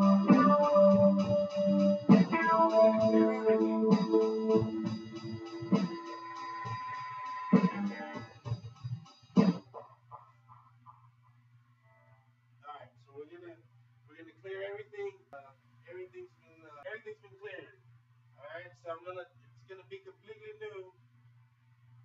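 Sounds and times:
guitar loop with strong hits: 0:00.0 - 0:08.6.

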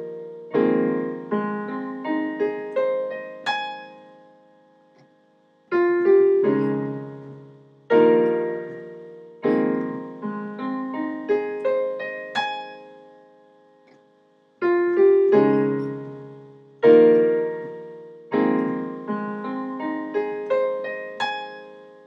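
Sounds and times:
digital piano arpeggio and chords: 0:00.0 - 0:22.0.

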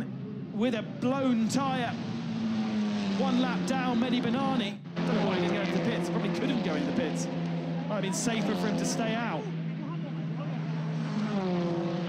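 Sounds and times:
constant low drone: 0:00.0 - 0:12.0
racing car engine passing: 0:01.4 - 0:12.0.

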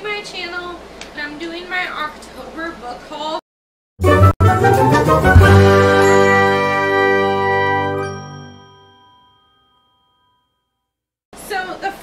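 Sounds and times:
bell-like jingle chord: 0:05.3 - 0:10.8.

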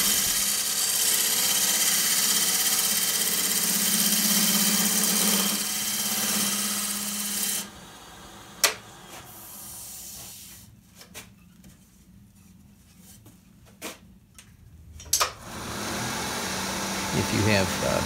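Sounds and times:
hiss of tool cutting wood: 0:00.0 - 0:01.0, 0:06.4 - 0:10.5
lathe motor hum: 0:00.0 - 0:09.5, 0:15.4 - 0:18.0.

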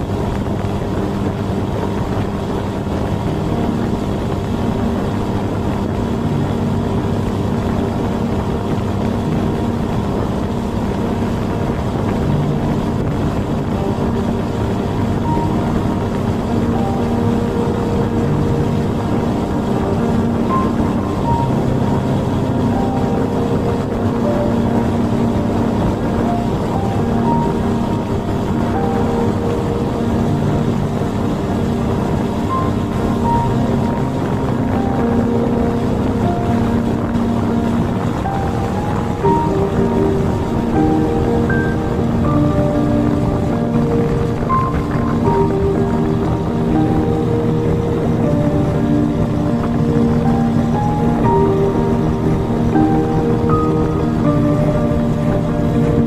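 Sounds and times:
music playing: 0:00.0 - 0:56.0
outboard motor running: 0:00.0 - 0:56.0.

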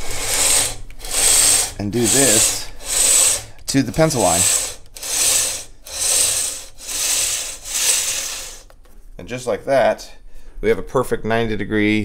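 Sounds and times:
belt sander sanding wood: 0:00.0 - 0:08.8.

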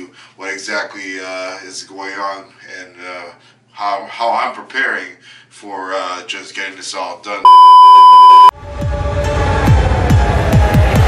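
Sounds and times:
loud steady test beep: 0:07.5 - 0:08.5.

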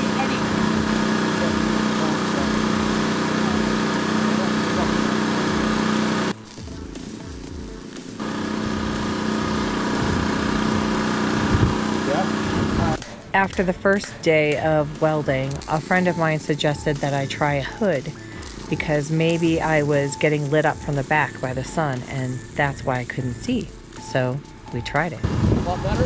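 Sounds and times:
mechanical drone with low hum: 0:00.0 - 0:26.0.

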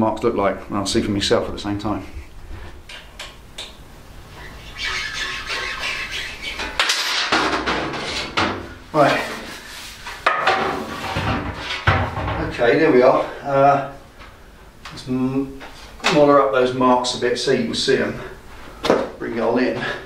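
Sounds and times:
metal panel rattling and scraping: 0:06.6 - 0:08.6, 0:10.3 - 0:12.6.

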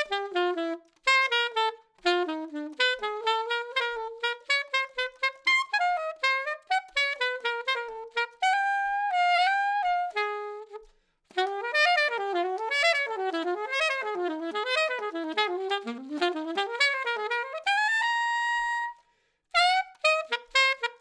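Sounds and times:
alto saxophone jazz line: 0:00.0 - 0:21.0.

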